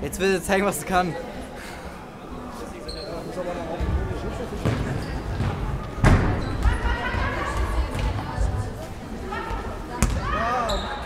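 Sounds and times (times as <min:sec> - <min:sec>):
people talking: 0:02.4 - 0:11.0.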